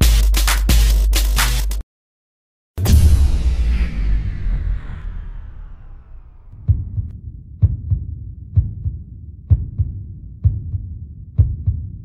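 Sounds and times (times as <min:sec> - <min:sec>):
heartbeat double thumps: 0:06.5 - 0:12.0.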